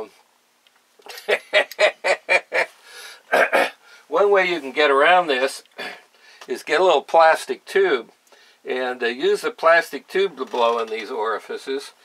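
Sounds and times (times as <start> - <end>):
man laughing: 1.0 - 3.7.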